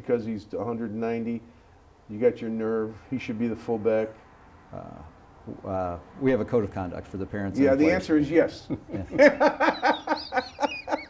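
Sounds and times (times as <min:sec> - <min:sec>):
men laughing: 0:08.5 - 0:11.0.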